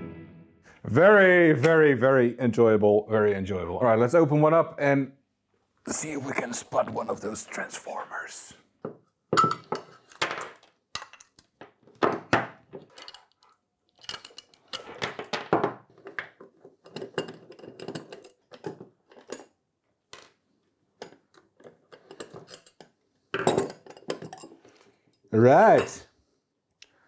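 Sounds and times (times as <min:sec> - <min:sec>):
metal clinking on wooden desk: 0:14.0 - 0:19.5, 0:21.0 - 0:24.7.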